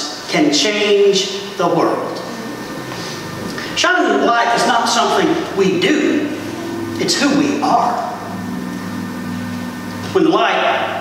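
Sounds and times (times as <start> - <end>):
low hum: 1.5 - 11.0
faint held tones: 5.2 - 11.0.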